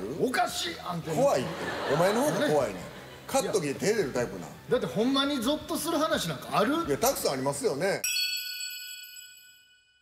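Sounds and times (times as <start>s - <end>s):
bright bell-like chime: 8.0s - 10.0s.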